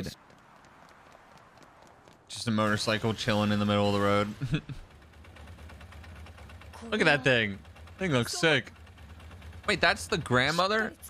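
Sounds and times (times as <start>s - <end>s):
running footsteps: 0.0s - 2.7s.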